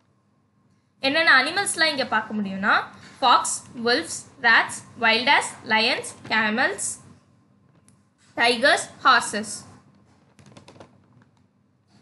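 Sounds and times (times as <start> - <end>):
typing on keyboard: 10.3 - 11.4.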